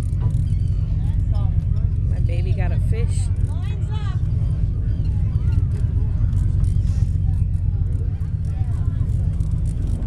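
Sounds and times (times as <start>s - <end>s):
boat engine rumbling: 0.0s - 10.0s
voices: 0.3s - 10.0s.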